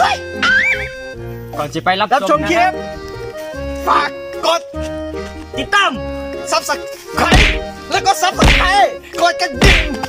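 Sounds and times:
background music: 0.0 - 10.0
loud whacks with deep thuds: 7.2 - 7.8, 8.4 - 8.8, 9.6 - 10.0.

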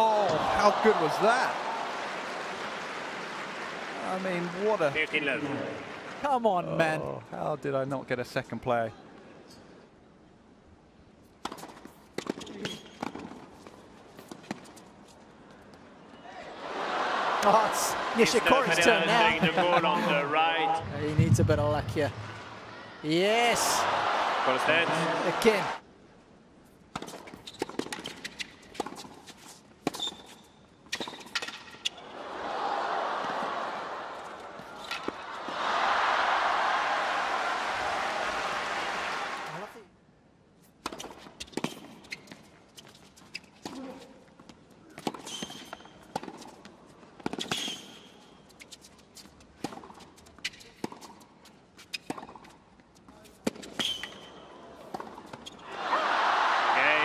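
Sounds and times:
crowd applause: 0.4 - 6.4, 16.6 - 21.2, 23.5 - 25.8, 35.3 - 39.7.

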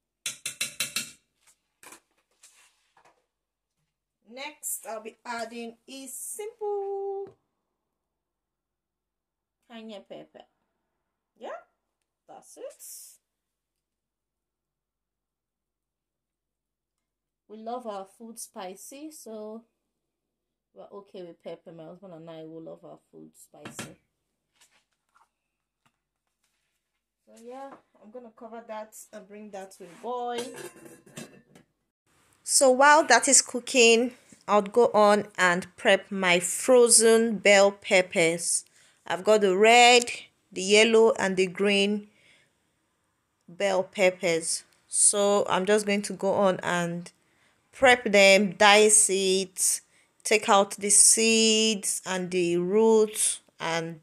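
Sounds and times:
metal spoon knocking on pan: 0.2 - 1.2
soft rustle: 1.4 - 3.2, 24.5 - 27.5.

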